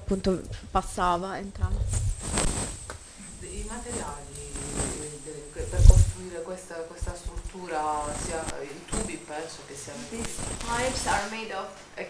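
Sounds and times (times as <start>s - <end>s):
voices talking quietly: 3.1s - 12.0s.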